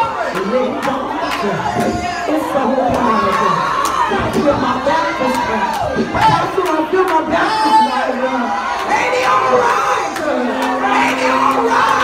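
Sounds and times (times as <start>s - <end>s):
audience shouting: 0.0s - 12.0s.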